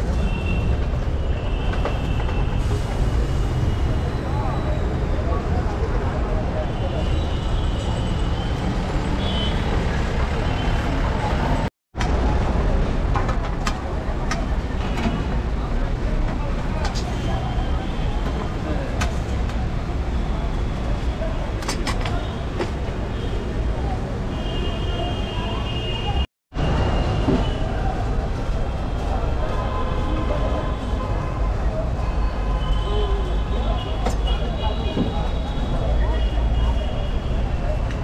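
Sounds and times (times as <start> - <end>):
traffic noise: 0.0 - 38.0.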